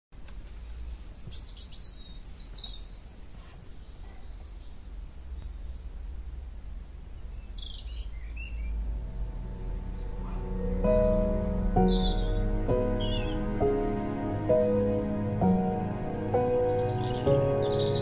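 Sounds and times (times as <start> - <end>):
birds chirping: 0.3 - 18.0
low steady rumble: 3.0 - 18.0
music: 8.5 - 18.0.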